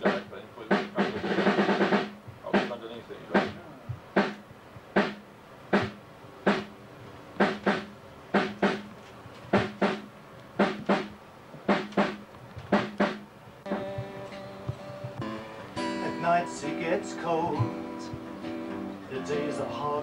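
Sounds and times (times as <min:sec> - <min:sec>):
drum hits with low tone: 0:00.0 - 0:06.7, 0:07.4 - 0:08.9, 0:09.5 - 0:11.1, 0:11.7 - 0:16.4, 0:17.2 - 0:18.4.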